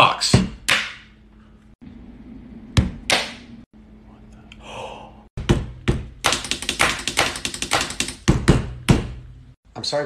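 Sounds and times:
pencil tapping on paper: 5.5s - 9.0s.

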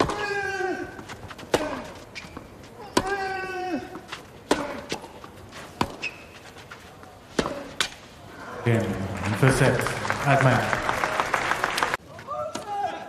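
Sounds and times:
racket hitting tennis ball: 3.9s - 6.2s.

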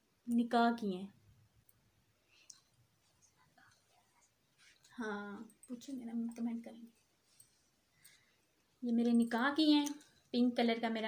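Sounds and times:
bangles clicking and rustling: 1.6s - 11.0s.

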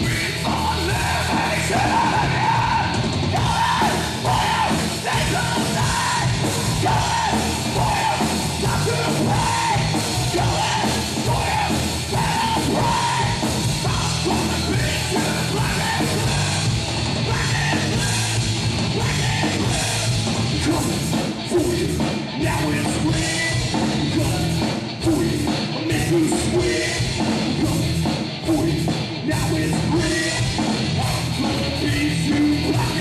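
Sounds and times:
drum kit: 0.0s - 33.0s
electric guitars: 0.0s - 33.0s.

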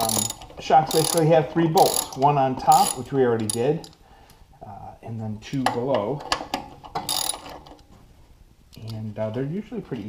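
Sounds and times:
socket ratchet clicking: 0.0s - 4.0s, 7.0s - 7.7s.

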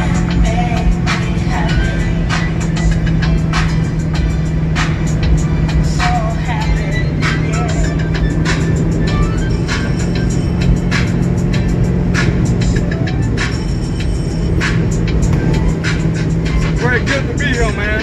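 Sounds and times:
car engine and road noise: 0.0s - 18.0s
music with steady beat on car stereo: 0.0s - 18.0s.

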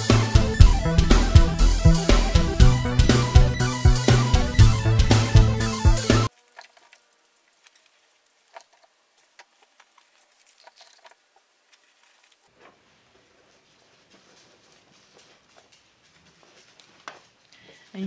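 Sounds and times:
paper strips rustling: 6.4s - 18.0s.

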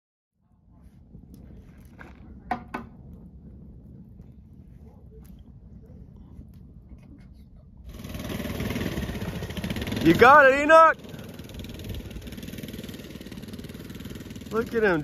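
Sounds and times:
wood fire crackling: 0.8s - 15.0s
small engine: 7.9s - 15.0s.

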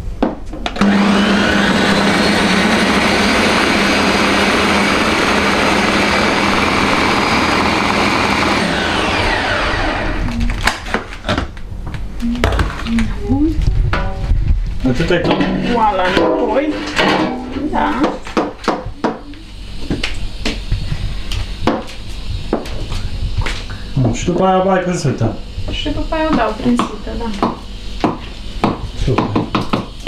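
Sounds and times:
blender running at full speed: 0.8s - 10.5s.

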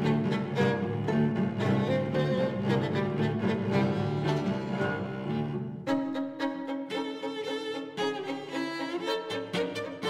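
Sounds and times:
cello low notes: 0.0s - 8.6s
violin melody: 0.0s - 10.0s.

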